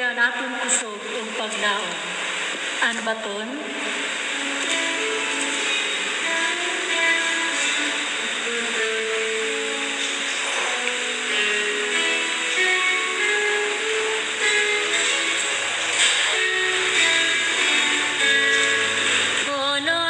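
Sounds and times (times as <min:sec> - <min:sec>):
instrumental melody of held notes: 0:04.3 - 0:19.5.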